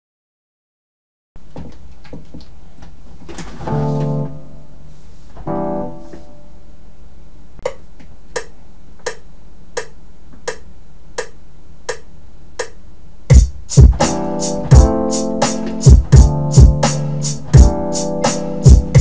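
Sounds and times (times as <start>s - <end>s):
keyboard chords: 3.7s - 6.8s, 12.6s - 19.0s
sharp tempo clicks: 8.4s - 19.0s.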